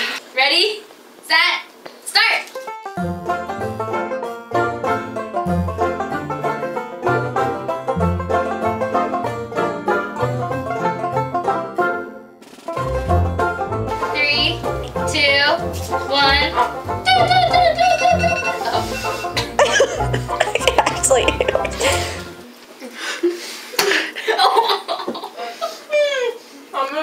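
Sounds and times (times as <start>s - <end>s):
upbeat banjo music with bass: 2.8s - 12.2s, 12.8s - 22.4s
voices and laughter: 19.4s - 22.2s.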